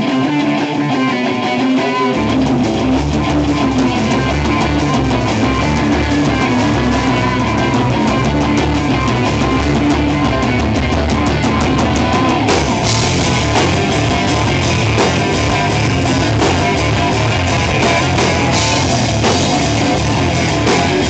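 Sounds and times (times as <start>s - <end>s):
bass guitar: 0.0s - 21.0s
drum kit: 0.0s - 21.0s
electric guitars: 0.0s - 21.0s.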